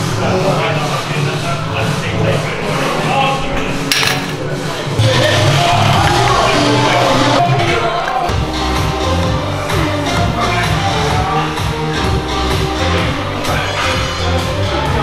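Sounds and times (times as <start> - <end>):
loud background music: 0.0 - 15.0.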